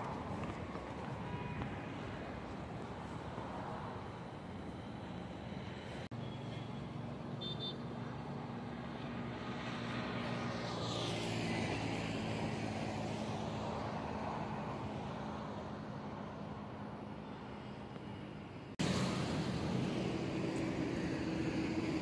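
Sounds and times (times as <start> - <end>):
traffic engine hum: 0.0 - 22.0
vehicle passing by: 7.9 - 15.5.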